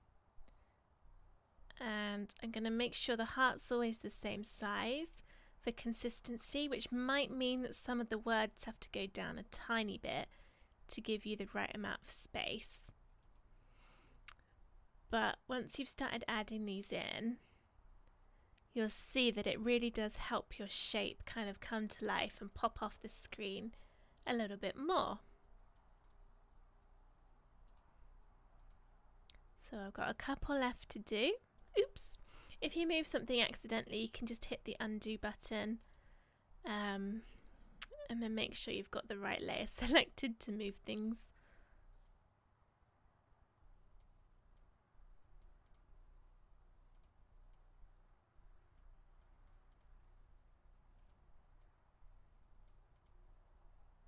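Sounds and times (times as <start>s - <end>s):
low background hum: 0.0s - 54.0s
computer mouse clicks: 13.2s - 13.5s, 25.7s - 26.3s, 27.6s - 28.0s, 28.6s - 29.4s, 35.8s - 36.0s, 37.3s - 38.0s, 43.9s - 44.7s, 45.4s - 46.0s, 46.9s - 47.7s, 48.7s - 50.0s, 50.9s - 51.8s, 52.6s - 53.2s.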